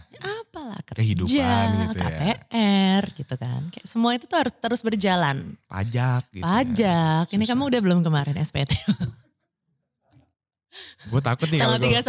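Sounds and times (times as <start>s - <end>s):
person laughing: 1.3s - 2.4s, 11.2s - 12.0s.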